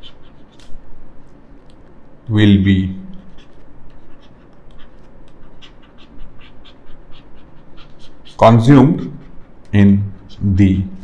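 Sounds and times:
stylus scratching and tapping tablet: 0:00.0 - 0:02.0, 0:03.1 - 0:11.0.

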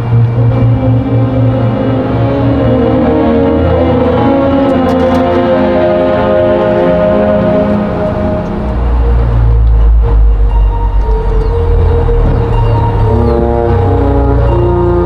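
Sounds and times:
marching band brass chords: 0:00.0 - 0:15.0
deep low rumble: 0:07.8 - 0:15.0.

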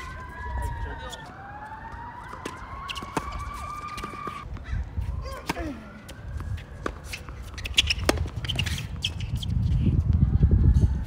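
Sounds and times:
siren wailing: 0:00.0 - 0:07.5.

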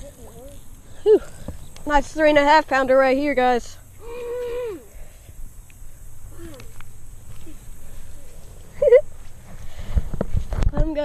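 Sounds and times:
person whooping: 0:04.0 - 0:05.0.

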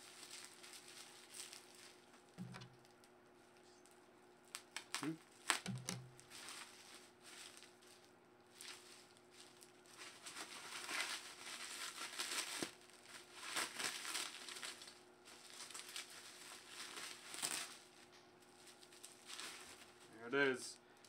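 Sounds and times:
bubble wrap crinkling: 0:00.0 - 0:20.2.

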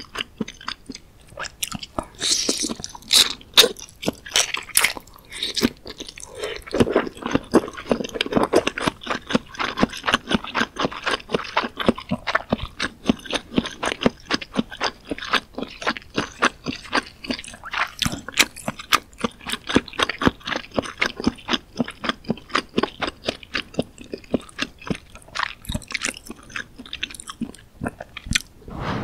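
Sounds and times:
wet chewing mouth clicks: 0:00.0 - 0:28.5.

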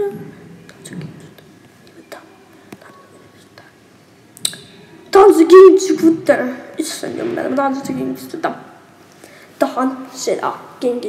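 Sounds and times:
faint whispering: 0:00.2 - 0:03.9.

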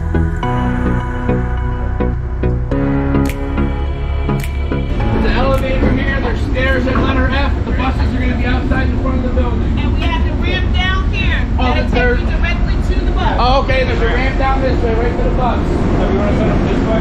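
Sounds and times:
train rumbling at platform: 0:04.0 - 0:17.0
people talking: 0:05.1 - 0:17.0.

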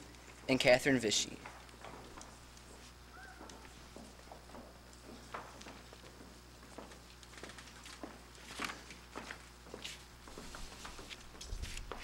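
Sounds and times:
footsteps on stage floor: 0:01.4 - 0:12.0.

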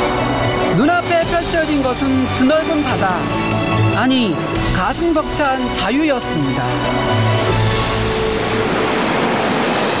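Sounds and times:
background music: 0:00.0 - 0:10.0
sea surf washing onto shore: 0:06.2 - 0:10.0.

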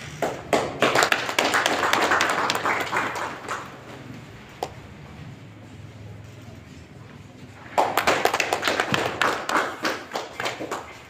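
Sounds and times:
people clapping: 0:00.0 - 0:04.8, 0:07.5 - 0:11.0.

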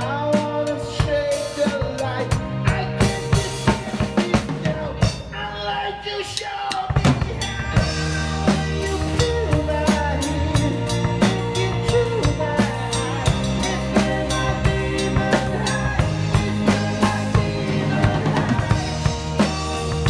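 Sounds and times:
drum kit played with sticks: 0:00.0 - 0:20.0
rock band playing: 0:00.0 - 0:20.0.

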